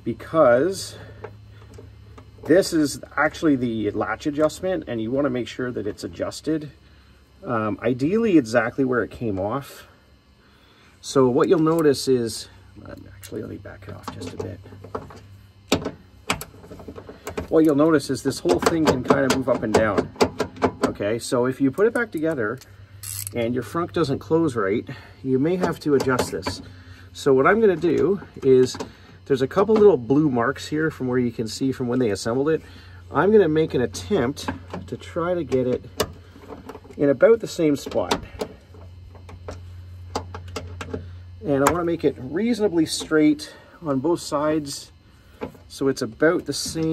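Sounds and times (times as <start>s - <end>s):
steady low hum: 0.0s - 46.9s
ratchet clicks: 22.0s - 23.4s
socket wrench clicking: 23.0s - 23.4s.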